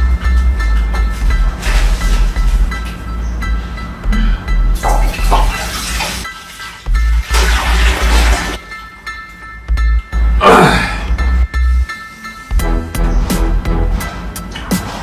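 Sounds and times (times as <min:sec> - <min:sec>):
music with heavy bass beat: 0:00.0 - 0:05.5, 0:11.1 - 0:15.0.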